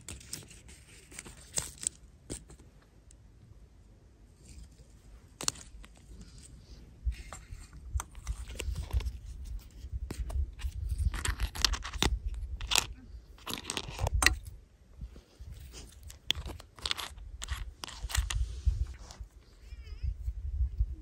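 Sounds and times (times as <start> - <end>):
wind rumble on microphone: 6.6 - 21.0
plastic toy pieces clicking: 11.1 - 14.4.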